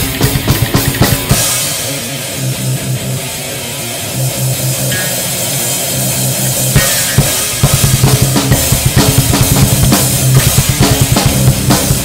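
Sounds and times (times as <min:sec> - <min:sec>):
hard drum hits: 0:00.0 - 0:02.8, 0:04.8 - 0:12.0
death metal band playing: 0:00.0 - 0:12.0.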